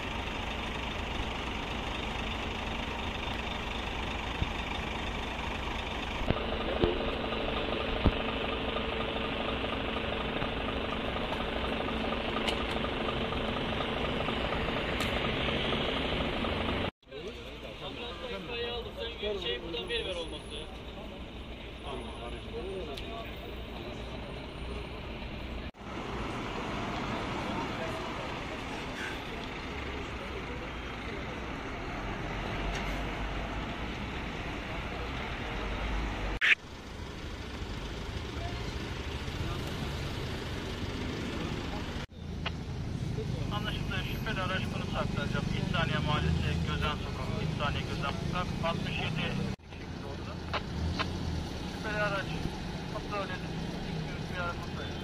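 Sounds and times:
vehicle engine running: 0.0s - 17.6s, 36.6s - 55.0s.

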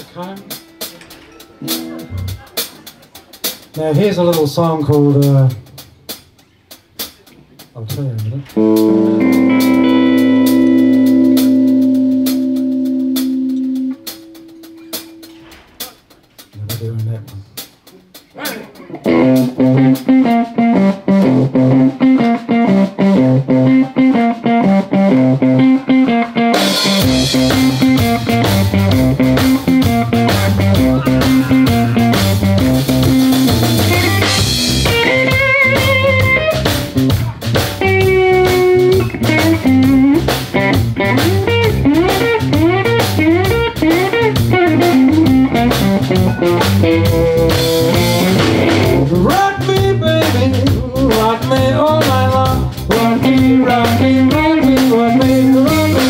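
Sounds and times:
electric guitar riff: 0.0s - 2.8s, 8.6s - 15.7s, 18.8s - 56.0s
bass guitar: 0.0s - 56.0s
drum kit: 0.0s - 56.0s.

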